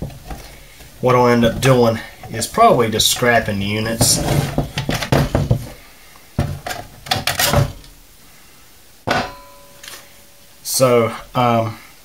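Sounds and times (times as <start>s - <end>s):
sharp metal clank: 9.1s - 10.1s.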